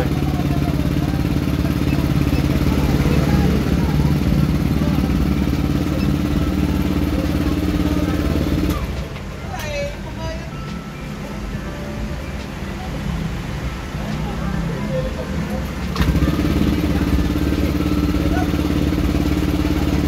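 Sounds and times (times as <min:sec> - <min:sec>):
scooter engine idling: 0:00.0 - 0:09.5, 0:13.8 - 0:20.0.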